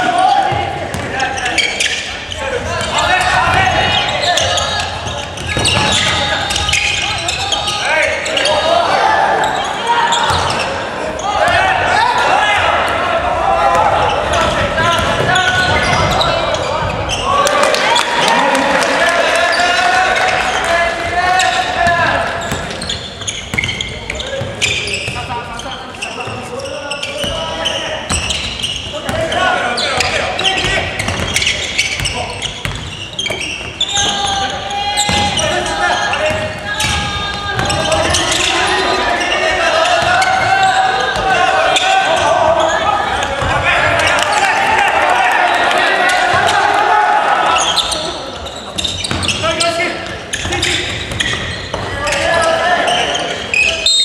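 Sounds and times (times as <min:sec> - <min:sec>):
shouting and cheering voices: 0:00.0 - 0:23.2, 0:23.8 - 0:32.6, 0:33.2 - 0:54.0
basketball bouncing on wooden floor: 0:31.0 - 0:33.4.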